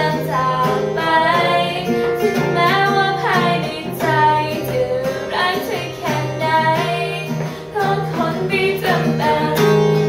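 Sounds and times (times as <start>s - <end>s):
acoustic guitar: 0.0s - 10.0s
girl singing: 0.0s - 10.0s.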